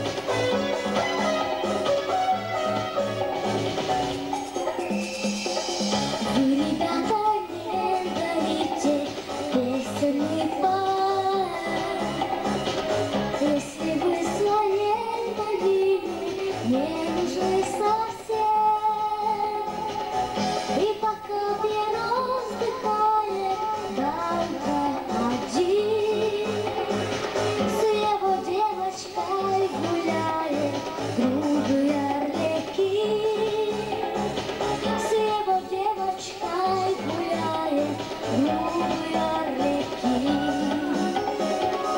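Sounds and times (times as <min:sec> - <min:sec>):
backing music: 0:00.0 - 0:41.9
girl singing into microphone: 0:06.2 - 0:12.6, 0:13.3 - 0:20.1, 0:20.7 - 0:26.9, 0:27.6 - 0:34.1, 0:34.8 - 0:41.9.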